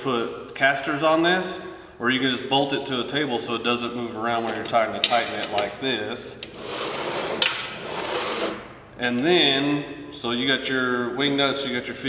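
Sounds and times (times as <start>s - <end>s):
metal pot scraping on table: 6.5s - 8.7s.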